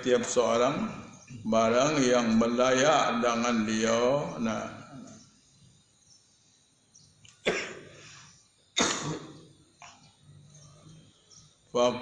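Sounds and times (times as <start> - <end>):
person coughing: 7.4 - 7.9, 8.8 - 9.4.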